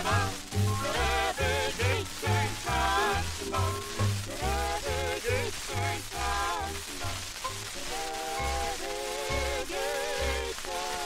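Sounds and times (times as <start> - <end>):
orchestral folk song recording: 0.0 - 11.0
record surface hiss: 0.0 - 11.0.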